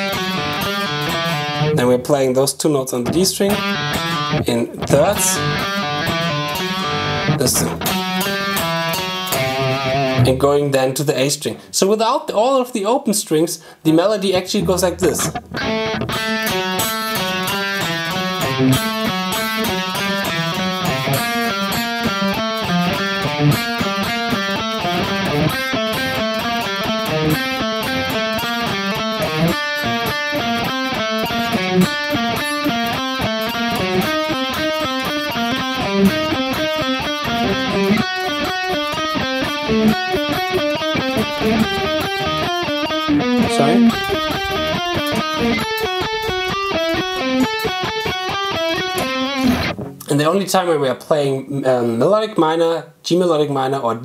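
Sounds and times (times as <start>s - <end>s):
electric guitar playing a scale: 0.0s - 2.0s, 3.0s - 10.6s, 14.3s - 50.1s.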